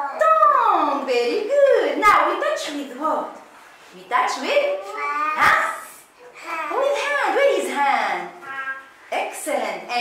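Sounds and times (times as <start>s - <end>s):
young girl's high-pitched voice: 4.7s - 5.5s, 6.2s - 6.8s, 8.4s - 8.9s.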